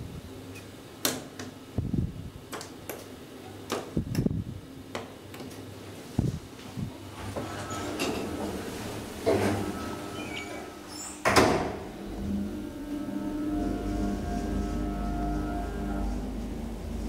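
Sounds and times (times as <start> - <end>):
elevator motor hum and whine: 0.0 - 17.0
elevator doors sliding shut: 7.1 - 17.0
elevator door thump: 11.2 - 12.3.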